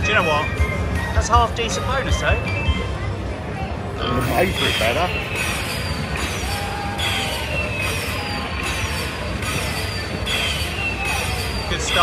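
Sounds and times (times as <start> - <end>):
low casino hum: 0.0 - 12.0
slot machine falling chime: 4.5 - 12.0.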